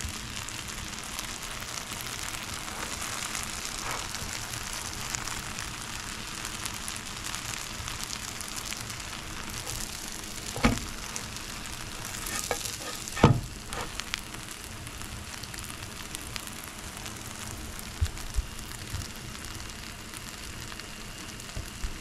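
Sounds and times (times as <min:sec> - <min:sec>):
bread sizzling in a pan: 0:00.0 - 0:22.0
sharp knock: 0:13.2 - 0:13.5.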